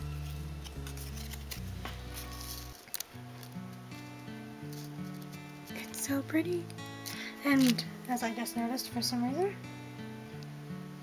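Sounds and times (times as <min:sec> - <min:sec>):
background music with low notes: 0:00.0 - 0:11.0.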